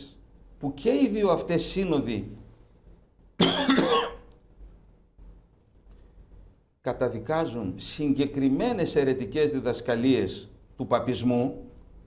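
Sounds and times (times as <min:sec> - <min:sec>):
man coughing: 0:03.4 - 0:04.3.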